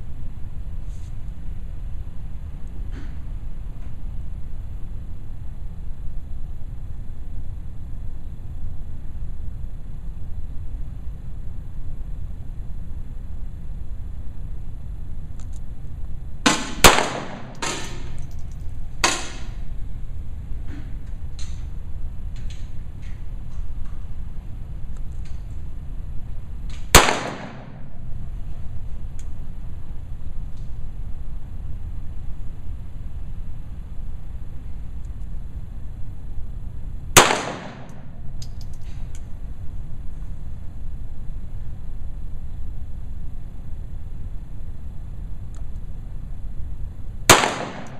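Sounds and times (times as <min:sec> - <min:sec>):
low background hum: 0:00.0 - 0:47.9
pistol shots echoing indoors: 0:16.5 - 0:18.2, 0:27.0 - 0:27.8, 0:37.2 - 0:38.1, 0:47.3 - 0:47.9.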